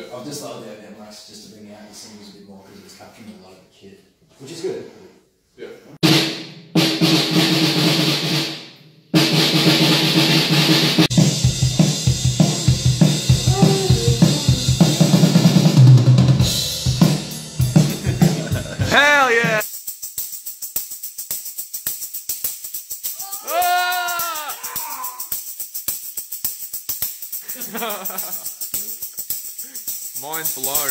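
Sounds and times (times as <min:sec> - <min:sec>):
drum kit playing: 0:06.0 - 0:08.6, 0:09.2 - 0:19.6
voice sliding in pitch: 0:13.3 - 0:15.1.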